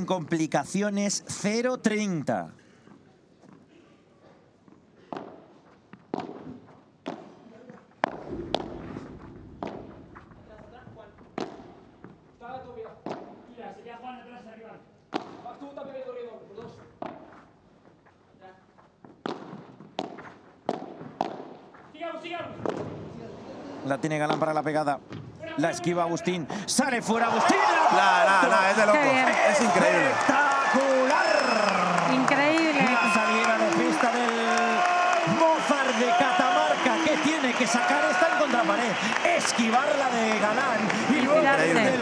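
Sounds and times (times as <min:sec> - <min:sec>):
crowd calling out: 0:27.0 - 0:42.0.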